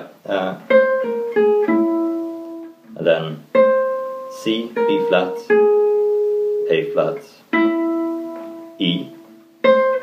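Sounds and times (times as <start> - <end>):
acoustic guitar picked notes: 0.0 - 10.0.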